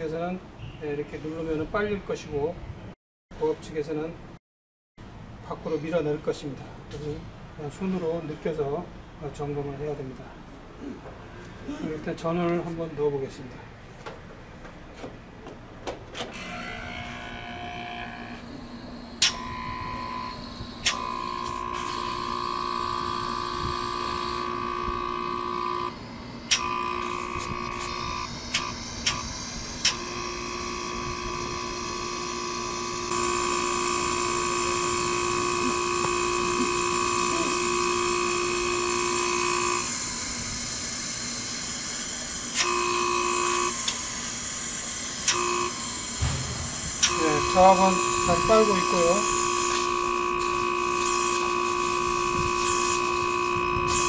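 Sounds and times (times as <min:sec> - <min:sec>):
air conditioner unit humming: 0:05.1 - 0:54.0
steady tones: 0:45.2 - 0:53.8.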